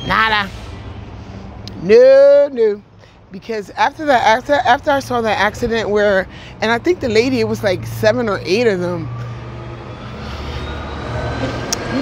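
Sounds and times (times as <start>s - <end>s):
engine humming with faint whine: 4.0s - 12.0s.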